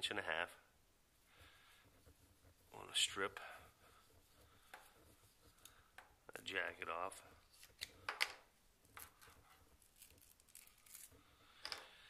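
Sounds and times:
faint rustles and ticks of cable: 1.2s - 12.0s.

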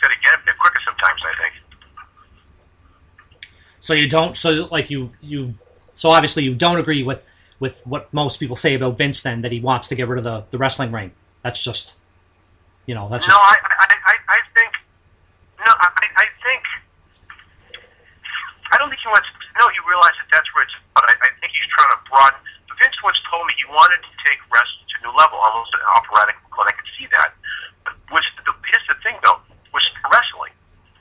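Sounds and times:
person talking over telephone: 0.0s - 2.2s, 3.8s - 11.9s, 12.9s - 14.8s, 15.6s - 16.8s, 17.7s - 30.5s.

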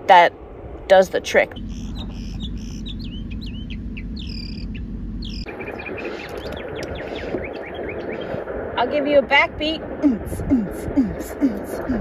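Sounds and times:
mockingbird singing: 1.5s - 8.4s.

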